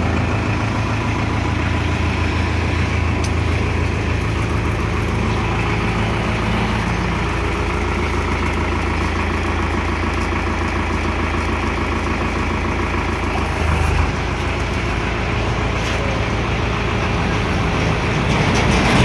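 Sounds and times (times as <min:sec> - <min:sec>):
tractor engine idling: 0:00.0 - 0:19.0.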